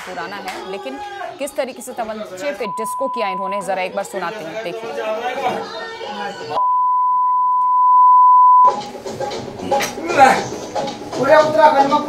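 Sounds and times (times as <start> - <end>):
censor bleep: 2.6 - 3.7, 6.6 - 8.8.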